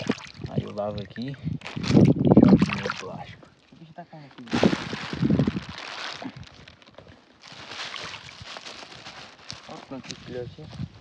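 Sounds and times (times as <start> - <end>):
small water splashes: 0.0 - 3.8, 4.4 - 9.6
plastic bag crinkling and rustling: 1.6 - 3.1, 4.3 - 10.7.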